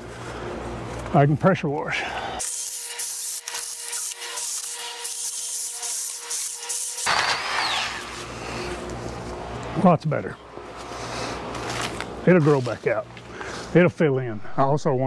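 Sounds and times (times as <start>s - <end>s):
hedge trimmer whining: 7.0s - 9.0s.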